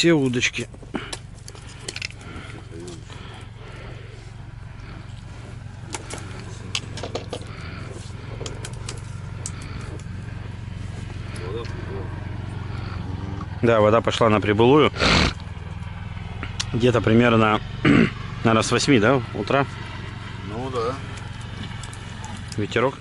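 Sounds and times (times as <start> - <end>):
steady low hum: 0.0 - 23.0
small clicks and knocks: 5.9 - 7.6.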